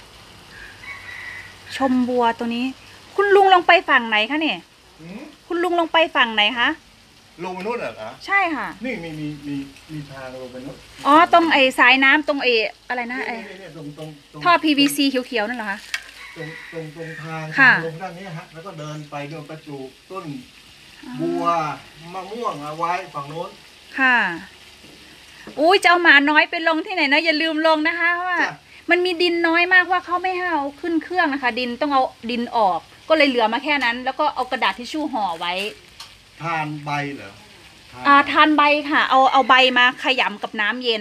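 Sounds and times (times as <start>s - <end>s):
background hiss: 0.0s - 41.0s
woman speaking: 1.7s - 4.6s, 5.5s - 6.8s, 8.3s - 8.8s, 11.0s - 13.5s, 14.4s - 15.8s, 17.6s - 17.8s, 21.0s - 21.6s, 24.0s - 24.5s, 25.5s - 35.8s, 38.1s - 41.0s
person speaking: 13.0s - 14.0s, 21.0s - 23.5s.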